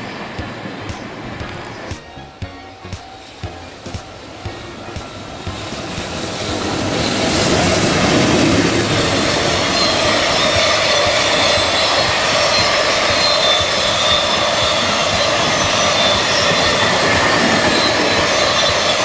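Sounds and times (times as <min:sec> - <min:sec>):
high wheel squeal: 0:00.0 - 0:19.0
train wheels rumbling on rail: 0:00.0 - 0:19.0.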